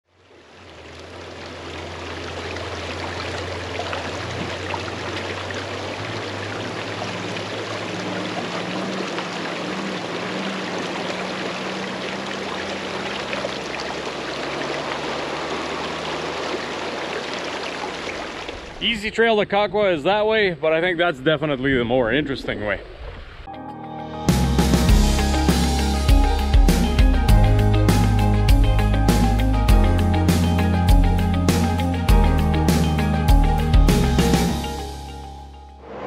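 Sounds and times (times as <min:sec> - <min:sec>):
creek flowing over stones: 0:00.1 - 0:18.8.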